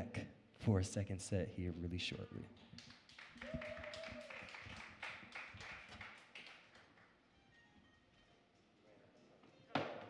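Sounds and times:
light applause: 0:02.6 - 0:07.2.

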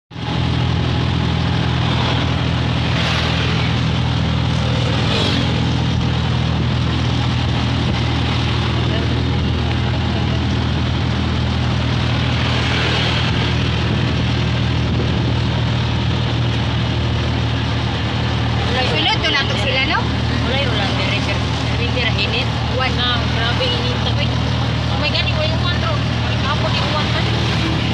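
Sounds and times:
road and wind noise: 0:00.1 - 0:27.9
vehicle engine hum: 0:00.1 - 0:27.9
voices: 0:07.9 - 0:13.4, 0:18.0 - 0:27.9.

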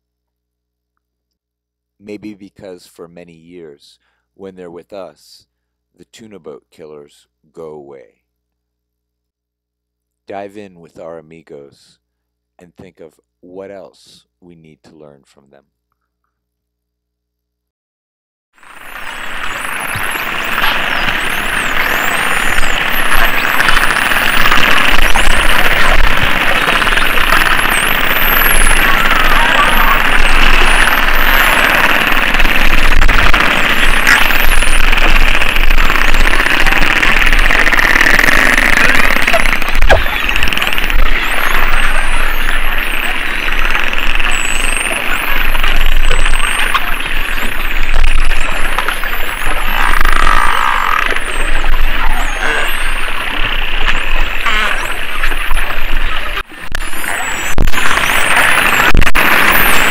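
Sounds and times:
rushing underwater noise: 0:18.6 - 0:59.9
dolphins whistling underwater: 0:18.7 - 0:59.9.

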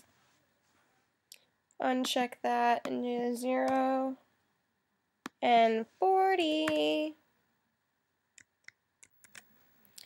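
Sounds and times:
faint computer keystrokes: 0:08.4 - 0:10.0.

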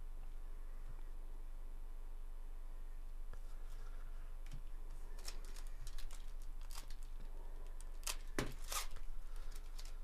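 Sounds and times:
faint electrical hum: 0:00.0 - 0:10.0
card pack wrapper crinkling: 0:05.2 - 0:10.0.

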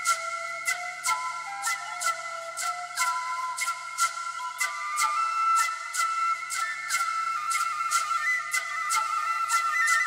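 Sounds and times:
wooden flute playing held notes: 0:00.0 - 0:10.0.

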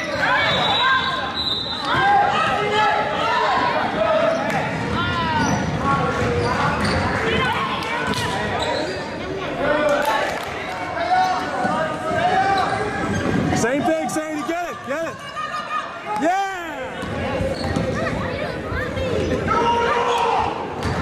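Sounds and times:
sneaker squeaks: 0:00.0 - 0:02.1, 0:04.2 - 0:09.4, 0:11.1 - 0:13.8, 0:17.0 - 0:18.2.

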